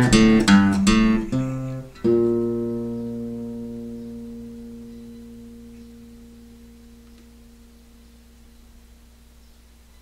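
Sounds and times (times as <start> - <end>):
acoustic guitar chord ringing: 0.0 - 9.0.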